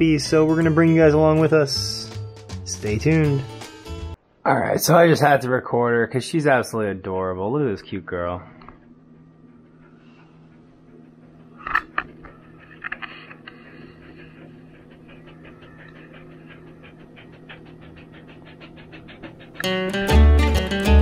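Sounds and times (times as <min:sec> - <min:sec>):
dog panting rapidly: 0:08.8 - 0:20.0.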